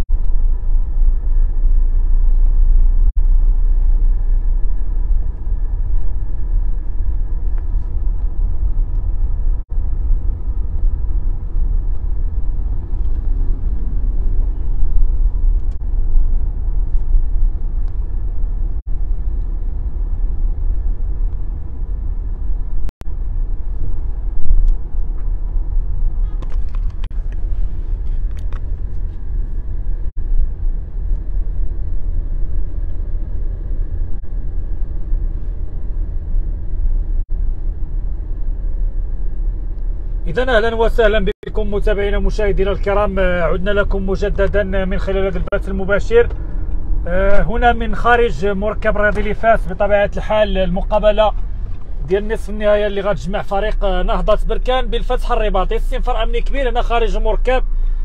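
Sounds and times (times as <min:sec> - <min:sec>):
car interior road rumble: 0:00.0 - 0:58.0.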